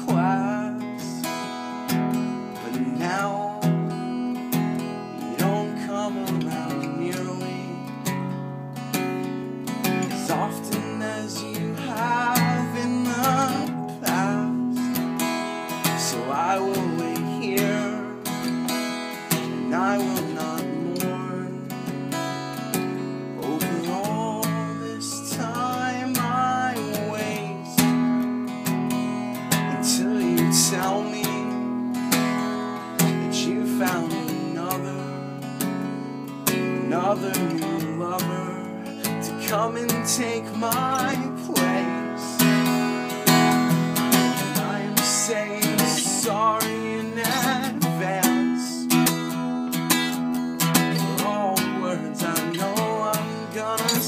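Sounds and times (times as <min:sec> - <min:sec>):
acoustic guitar strumming chords: 0:00.0 - 0:54.0
man singing: 0:00.0 - 0:54.0.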